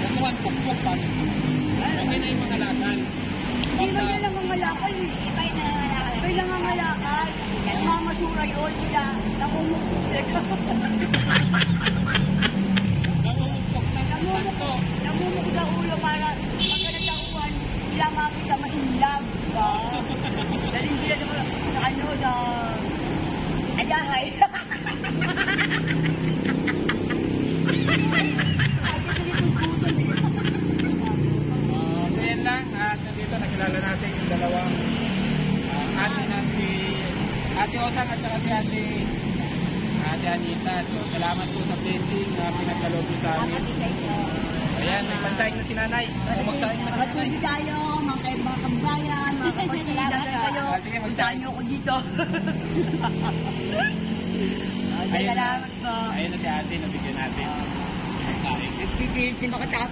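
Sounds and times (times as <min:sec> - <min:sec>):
people talking and laughing: 0:00.0 - 0:59.9
road traffic passing: 0:00.0 - 0:59.9.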